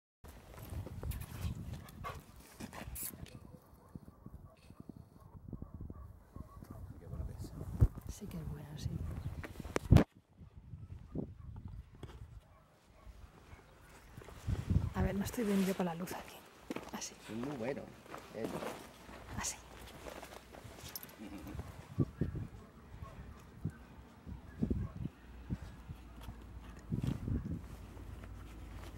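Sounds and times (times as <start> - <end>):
dog sounds: 1.2 - 7.8, 12.4 - 14.2, 20.8 - 27.8.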